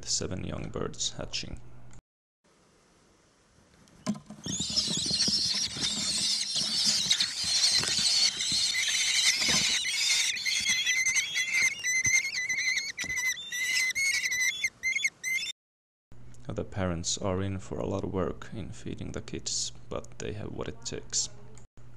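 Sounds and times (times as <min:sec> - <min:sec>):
knocks and rustling in nest box: 0:04.1 - 0:13.3
bird nestlings begging calls: 0:04.4 - 0:15.5.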